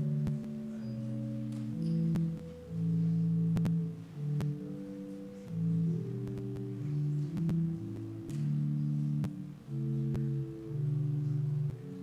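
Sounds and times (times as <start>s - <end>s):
organ playing slow chords: 0.0s - 12.0s.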